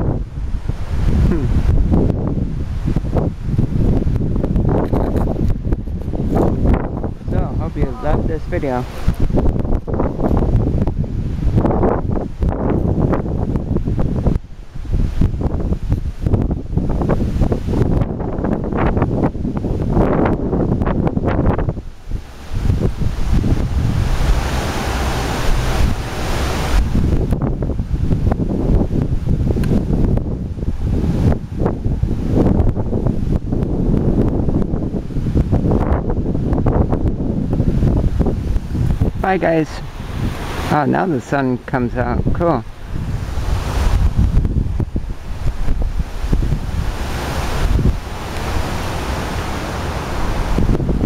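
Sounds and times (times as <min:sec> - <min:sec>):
wind buffeting microphone: 0:00.0 - 0:51.0.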